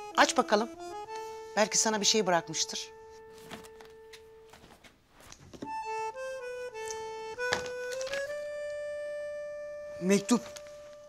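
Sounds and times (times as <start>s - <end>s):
soft reedy melody: 0.0s - 4.8s, 5.7s - 11.0s
cardboard box thuds: 3.4s - 4.9s.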